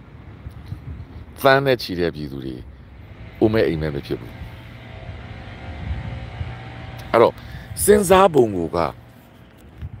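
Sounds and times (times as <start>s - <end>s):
low background rumble: 2.0s - 10.0s.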